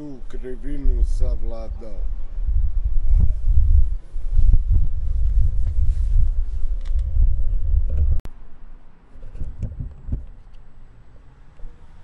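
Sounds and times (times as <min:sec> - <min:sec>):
wind buffeting microphone: 0:00.0 - 0:08.3, 0:09.2 - 0:10.6.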